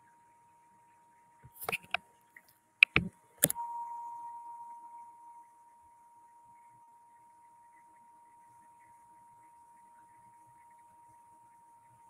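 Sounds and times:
quick sharp taps: 0:02.8 - 0:03.1
clear ringing tone: 0:03.6 - 0:06.6.

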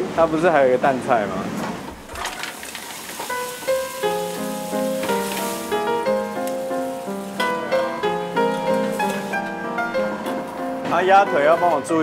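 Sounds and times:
garlic and tomatoes sizzling in oil: 0:02.3 - 0:10.2
background music with held notes: 0:03.2 - 0:12.0.

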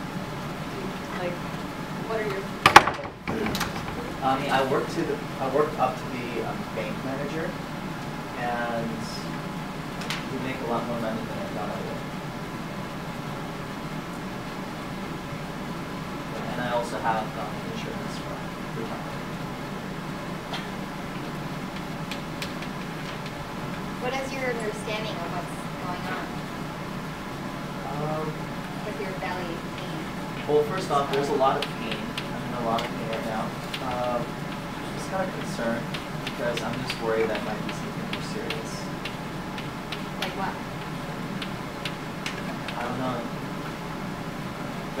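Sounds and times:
low room hum: 0:00.0 - 0:45.0
sharp ticking clicks: 0:35.4 - 0:42.9.

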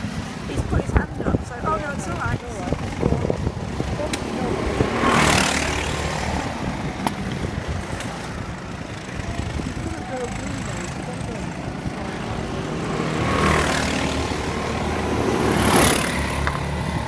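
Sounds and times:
go-kart engines running: 0:00.0 - 0:17.0.

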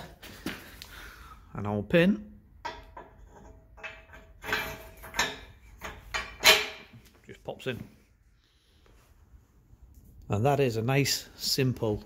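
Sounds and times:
metal clinks and scrapes: 0:02.7 - 0:07.0.

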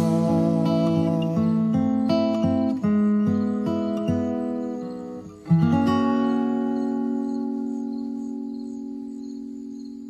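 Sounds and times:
acoustic guitar chord strummed: 0:00.0 - 0:10.0.

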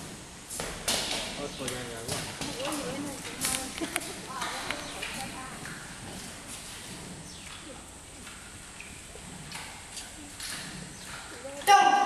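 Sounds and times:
voices talking quietly: 0:01.4 - 0:08.4.

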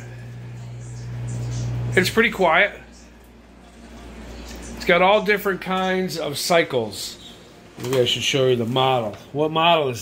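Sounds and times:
dishwasher running: 0:00.0 - 0:10.0.

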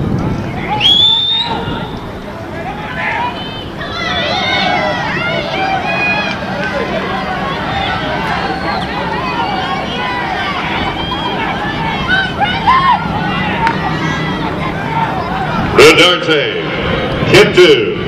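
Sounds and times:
crowd shouting and cheering: 0:00.0 - 0:18.0.

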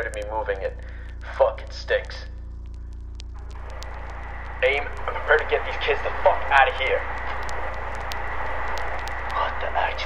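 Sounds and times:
radio static hiss: 0:00.0 - 0:02.4, 0:03.2 - 0:10.0
faint high whine: 0:00.0 - 0:10.0
low hum: 0:00.0 - 0:10.0
sharp crackling clicks: 0:00.0 - 0:10.0.

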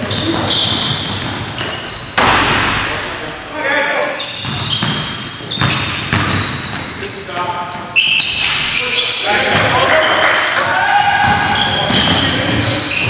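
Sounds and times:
players calling out: 0:00.0 - 0:13.0.

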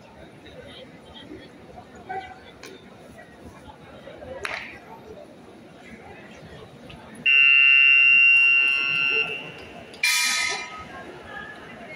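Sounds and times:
electronic buzzer tone: 0:07.3 - 0:09.6.

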